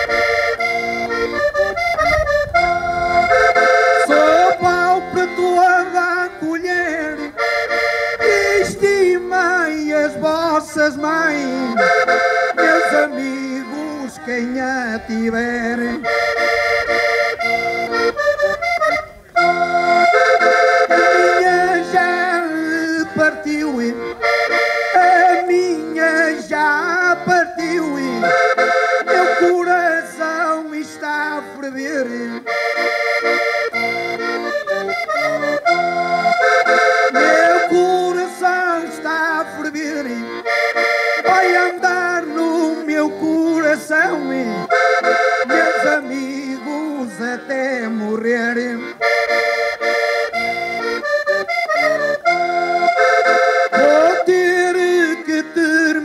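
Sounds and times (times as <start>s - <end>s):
accordion folk tune: 0.0s - 56.0s.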